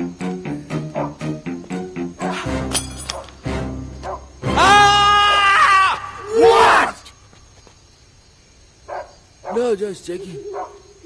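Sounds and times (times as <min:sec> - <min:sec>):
man screaming high-pitched: 0:04.5 - 0:07.0.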